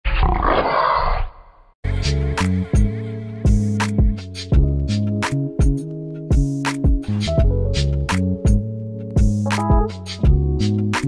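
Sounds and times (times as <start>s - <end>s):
big cat growling: 0.1s - 1.4s
music: 1.8s - 11.0s.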